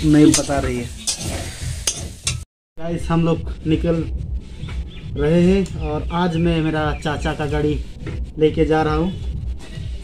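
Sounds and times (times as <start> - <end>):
potatoes sizzling in a pan: 0.0 - 2.4.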